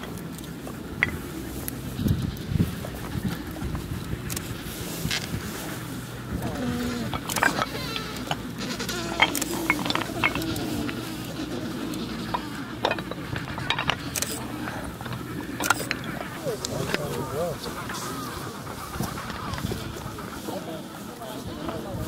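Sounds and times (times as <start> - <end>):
distant penguin calls: 0.0 - 22.0
penguins calling: 0.0 - 22.0
sharp clicks and knocks: 12.3 - 16.4.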